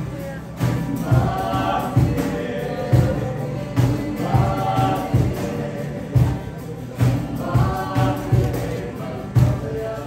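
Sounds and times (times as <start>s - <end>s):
voices singing together: 0.0s - 10.0s.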